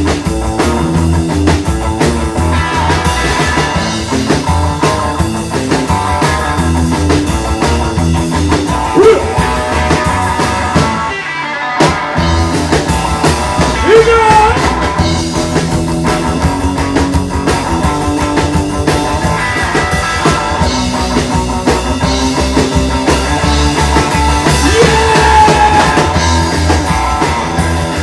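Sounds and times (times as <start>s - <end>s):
electric guitar lead: 0.0s - 28.0s
rockabilly band playing: 0.0s - 28.0s.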